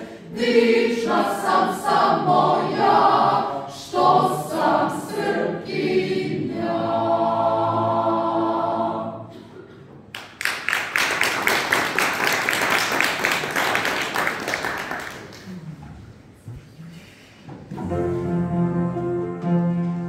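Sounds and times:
mixed choir singing a cappella: 0:00.0 - 0:09.6
audience applauding: 0:10.1 - 0:15.6.

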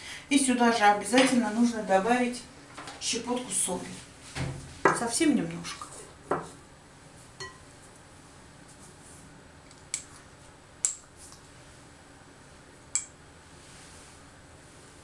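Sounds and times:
spoon clinking on porcelain: 0:07.4 - 0:07.6.

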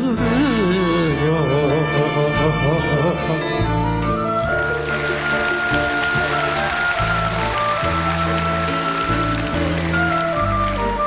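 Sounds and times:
band playing instrumental music: 0:00.0 - 0:11.0
audience applause: 0:04.5 - 0:11.0.

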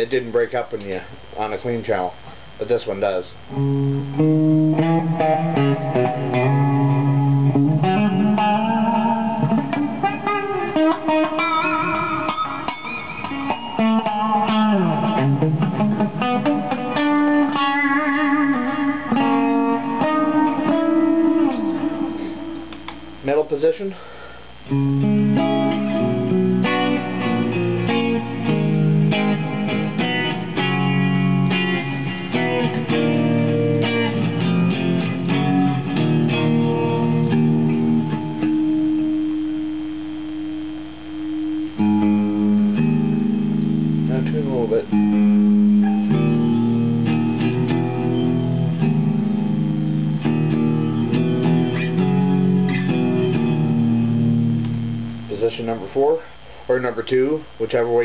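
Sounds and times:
clean electric guitar playing: 0:03.4 - 0:23.5, 0:24.6 - 0:55.8.

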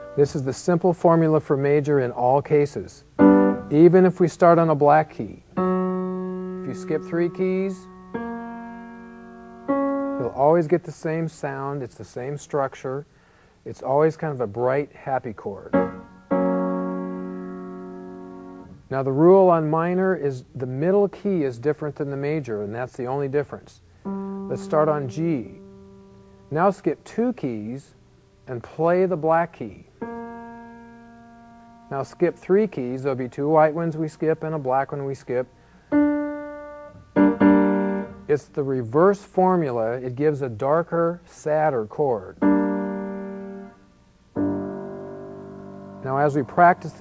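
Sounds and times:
piano chord: 0:00.0 - 0:00.4, 0:03.2 - 0:04.1, 0:05.5 - 0:10.4, 0:15.7 - 0:18.8, 0:24.0 - 0:26.6, 0:30.0 - 0:32.4, 0:35.9 - 0:38.3, 0:42.4 - 0:47.0.

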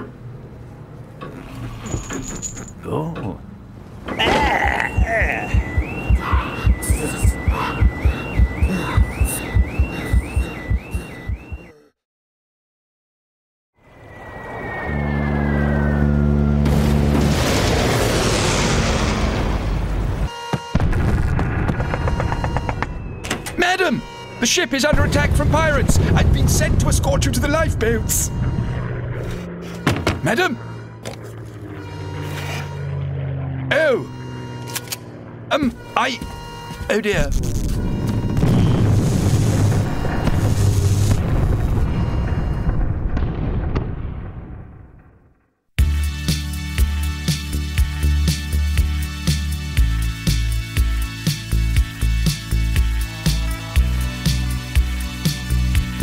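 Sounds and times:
explosions: 0:16.7 - 0:23.2, 0:24.8 - 0:29.4, 0:37.3 - 0:45.3
background music: 0:45.8 - 0:56.0
deep ship's horn blast: 0:52.7 - 0:54.8.

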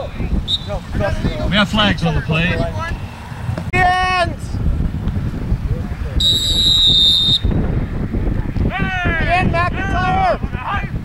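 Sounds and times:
sports whistle blast: 0:00.5 - 0:00.8, 0:06.2 - 0:07.5.

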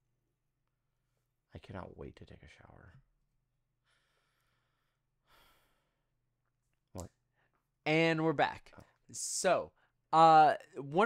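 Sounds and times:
soft breath out: 0:03.8 - 0:06.0.

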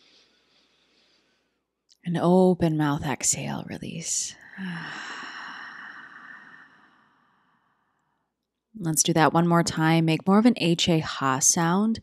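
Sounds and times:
woman exhaling sigh: 0:04.5 - 0:07.3.

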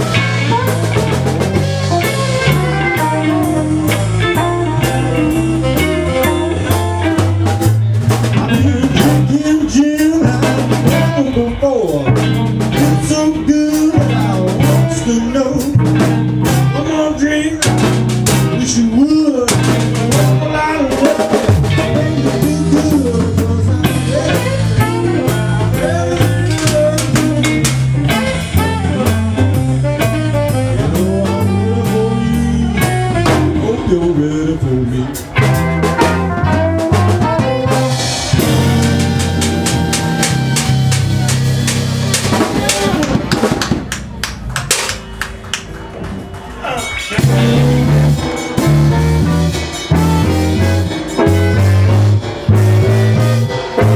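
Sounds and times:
tenor saxophone: 0:00.0 - 0:07.4, 0:24.1 - 0:33.8, 0:35.4 - 0:43.1
live blues band playing: 0:00.0 - 0:53.9
repeating bass line: 0:00.0 - 0:53.9.

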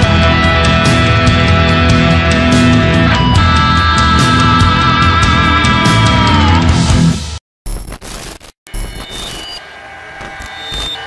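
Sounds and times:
high-pitched electronic beeps: 0:07.7 - 0:11.0.

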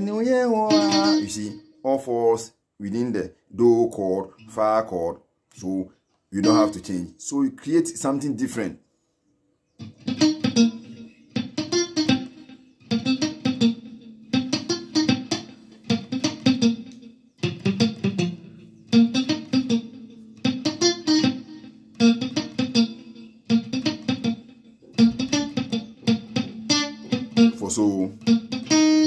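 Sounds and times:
muted electric guitar picking: 0:00.0 - 0:01.9, 0:06.4 - 0:07.1, 0:09.8 - 0:29.0.

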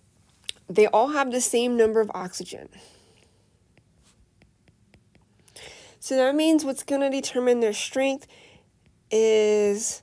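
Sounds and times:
stylus tapping on glass screen: 0:03.2 - 0:05.7, 0:08.8 - 0:09.1.

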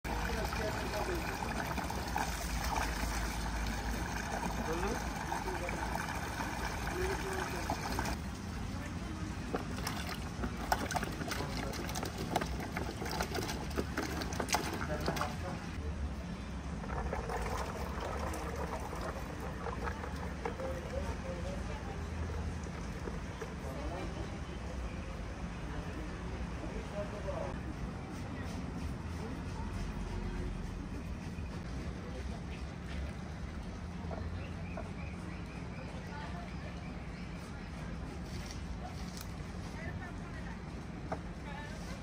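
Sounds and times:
hose water pouring into metal pot: 0:00.1 - 0:08.2, 0:09.6 - 0:15.5, 0:16.8 - 0:21.2.

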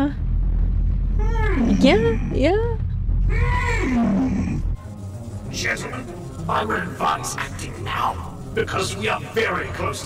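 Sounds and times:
low rumble: 0:00.0 - 0:10.0
monster growling call: 0:03.2 - 0:04.8.

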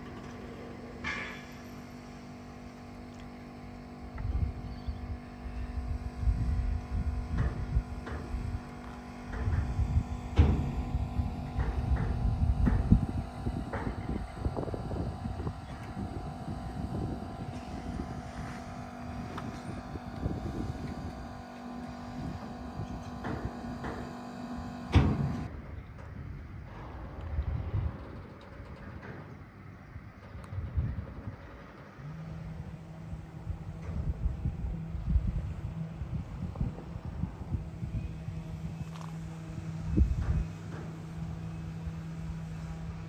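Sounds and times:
engine drone: 0:00.0 - 0:43.0
wind rumble on microphone: 0:04.0 - 0:43.0.

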